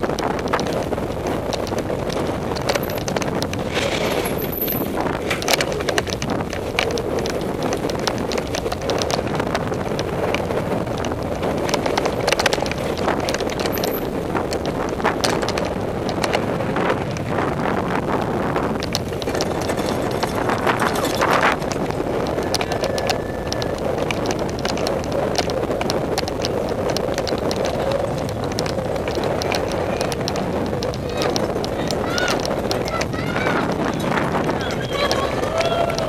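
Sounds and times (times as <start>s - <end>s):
bike clicks and rattles: 0.0s - 36.0s
tyre and wind rush: 0.0s - 36.0s.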